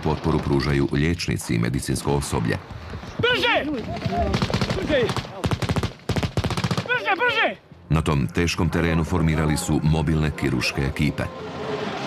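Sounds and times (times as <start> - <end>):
automatic gunfire: 4.0 - 7.0.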